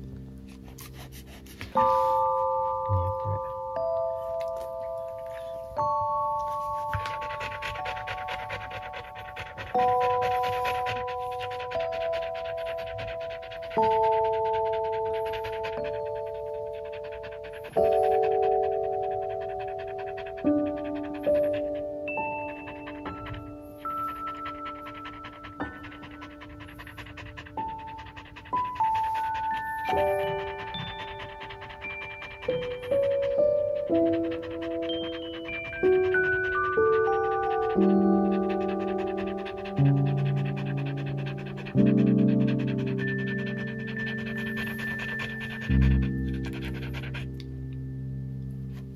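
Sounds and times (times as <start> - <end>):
dog panting quickly: 0.0 - 47.9, 48.6 - 48.9
background music of held notes: 0.0 - 48.9.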